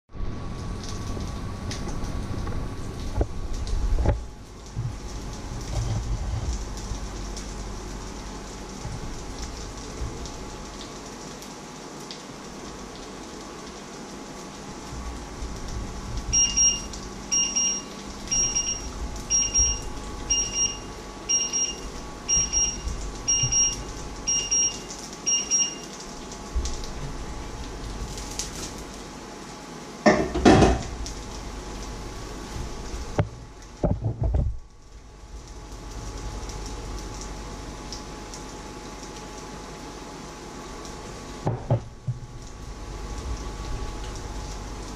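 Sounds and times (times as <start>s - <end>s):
low kitchen hum: 0.1s - 44.9s
timer beeping: 16.4s - 25.8s.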